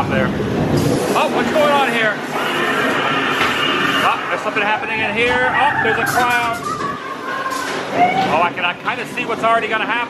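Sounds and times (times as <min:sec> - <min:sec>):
spooky sound effects over speakers: 0:02.3 - 0:07.3.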